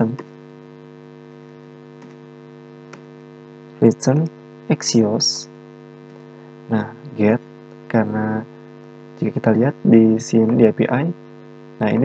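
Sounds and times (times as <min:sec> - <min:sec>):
person speaking: 0:00.0 - 0:00.2, 0:03.8 - 0:05.5, 0:06.7 - 0:08.5, 0:09.2 - 0:11.2, 0:11.8 - 0:12.0
electrical hum: 0:00.0 - 0:12.0.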